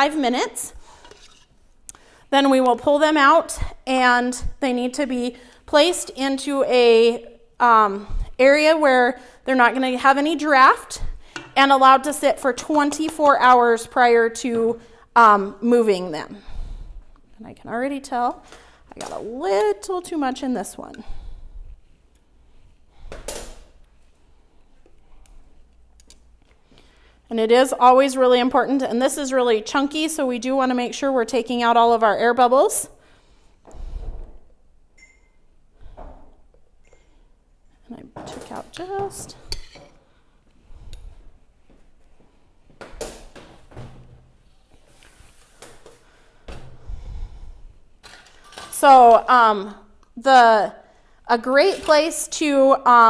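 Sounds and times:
spoon scraping metal pot: 0:00.8 - 0:01.6, 0:38.7 - 0:40.0.

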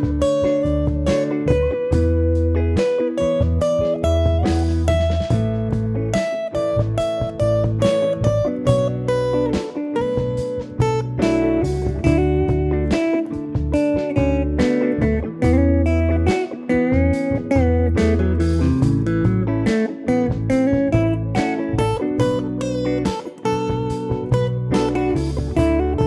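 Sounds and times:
backing track with bass line: 0:00.0 - 0:26.0
electric guitar melodic lines: 0:00.0 - 0:26.0.

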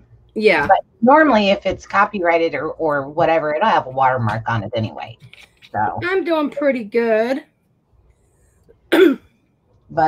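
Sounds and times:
person clearing throat: 0:08.9 - 0:09.3.

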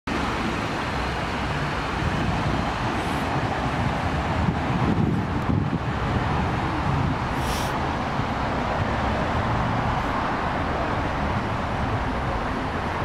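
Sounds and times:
road traffic hum and rumble: 0:00.1 - 0:13.0.

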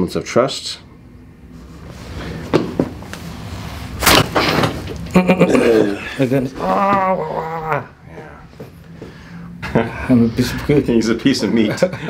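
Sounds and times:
man moaning in pain: 0:05.4 - 0:08.5.

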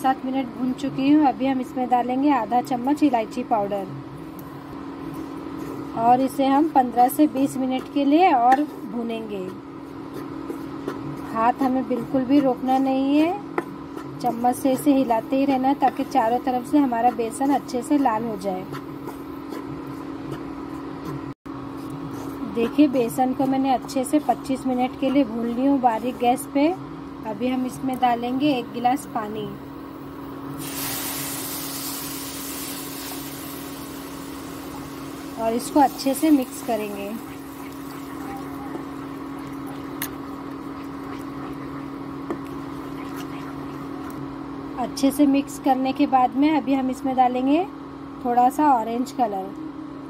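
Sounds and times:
induction cooktop humming: 0:00.0 - 0:50.0
spatula stirring bubbling batter: 0:05.0 - 0:21.0, 0:30.7 - 0:44.2.

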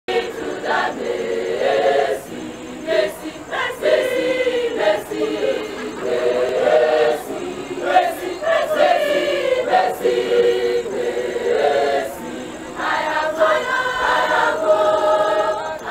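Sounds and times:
large choir singing: 0:00.1 - 0:15.9.

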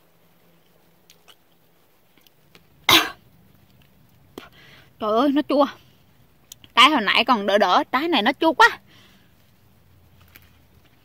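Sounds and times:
breathy cough-like outburst: 0:02.9 - 0:03.2.

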